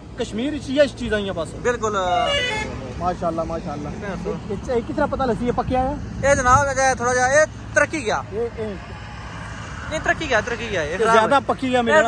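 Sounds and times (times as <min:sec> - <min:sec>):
man speaking: 0:00.2 - 0:09.0, 0:09.9 - 0:12.0.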